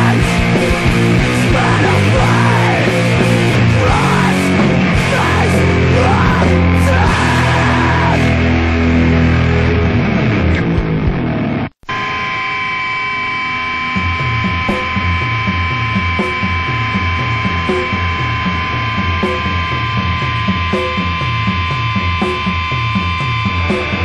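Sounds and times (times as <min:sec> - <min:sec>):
guitar amp hum: 0:00.0 - 0:24.0
guitar feedback tones: 0:00.0 - 0:24.0
slow low guitar riff: 0:00.0 - 0:24.0.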